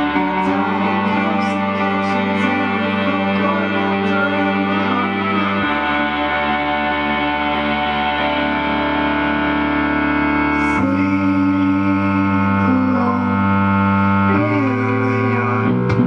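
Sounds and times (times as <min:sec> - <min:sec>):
sustained synthesizer chords: 0:00.0 - 0:16.0.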